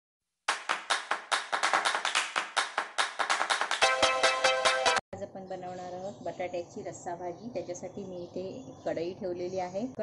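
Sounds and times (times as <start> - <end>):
hand claps: 0.5 - 5.0.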